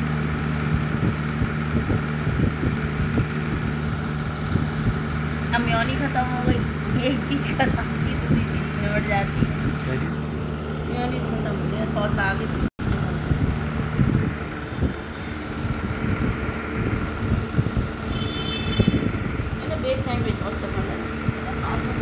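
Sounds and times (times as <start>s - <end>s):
background rumble and hum: 0.0s - 22.0s.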